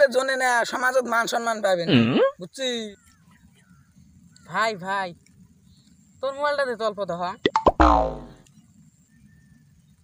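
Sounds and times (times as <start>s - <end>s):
springy boing twang: 7.5s - 8.4s.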